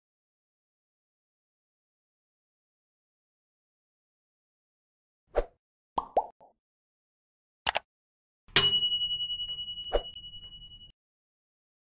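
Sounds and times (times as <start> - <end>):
clicks: 7.7 - 7.9
bright ding: 8.5 - 10.9.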